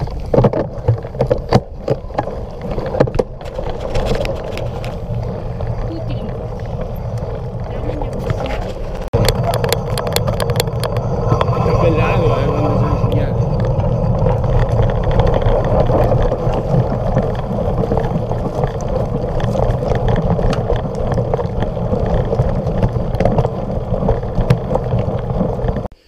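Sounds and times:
bike rumble on gravel: 0.0 - 26.0
wind rush: 2.8 - 25.9.

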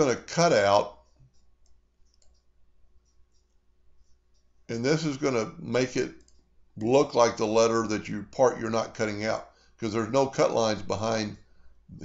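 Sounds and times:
mouse and keyboard clicks: 1.2 - 3.6.

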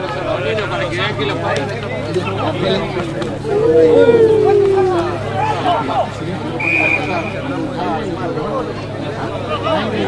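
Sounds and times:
players and spectators shouting: 3.4 - 5.3.

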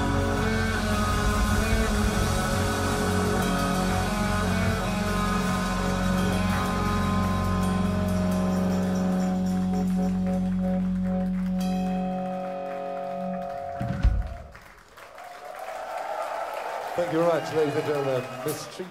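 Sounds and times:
rock band holding final chord: 0.0 - 14.5
crowd applauding and cheering: 0.0 - 18.9.

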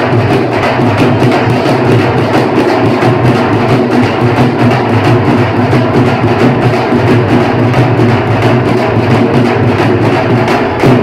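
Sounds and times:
barrel drums played with sticks: 0.0 - 11.0.

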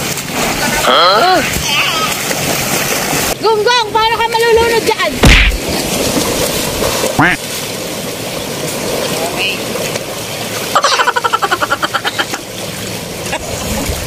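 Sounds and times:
sea water splashing around rocks: 0.0 - 3.4, 4.4 - 14.0
sudden loud burst: 5.2 - 5.6
voices calling out: 7.1 - 7.4.

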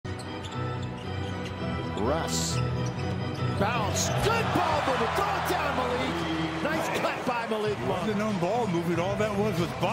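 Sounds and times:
background music: 0.1 - 9.9.

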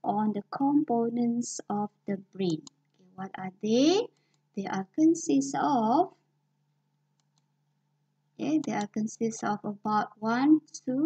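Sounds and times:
woman's voice: 0.0 - 6.2, 8.4 - 11.0
faint clicks: 7.1 - 7.5.

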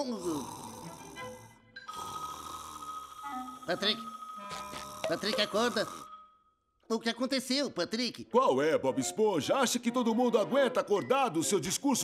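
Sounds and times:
soft cartoon music: 0.0 - 12.0
steady high tone: 1.8 - 6.7.

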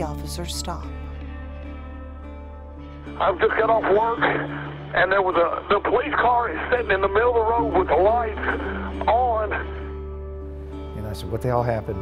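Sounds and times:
soft background music: 0.0 - 12.0
caller speaking on phone: 3.2 - 9.8.

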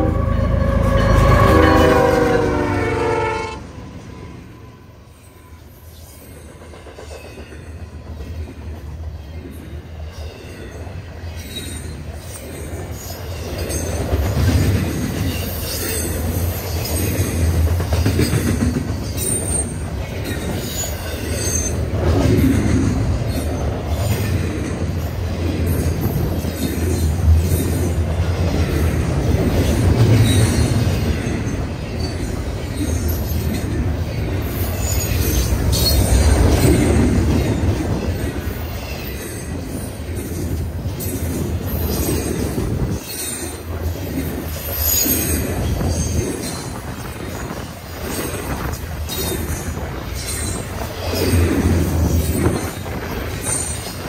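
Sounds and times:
high-pitched wheel squeals: 0.0 - 3.6
train wheels rumbling on rails: 0.0 - 54.0.

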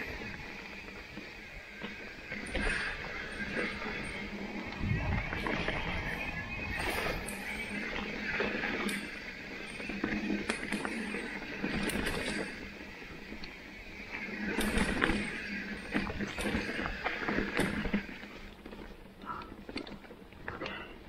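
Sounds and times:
bike rattling and knocking: 0.0 - 21.0
bike tyres rushing on dirt: 0.0 - 21.0.

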